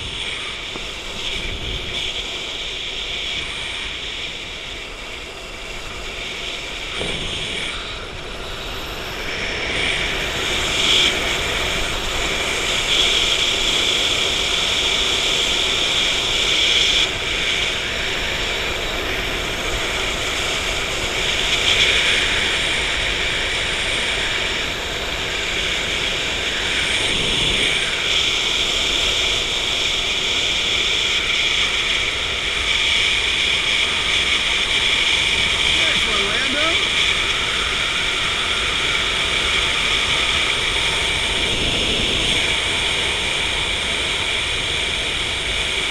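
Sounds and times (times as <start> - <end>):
wind rushing over microphone: 0.0 - 45.9.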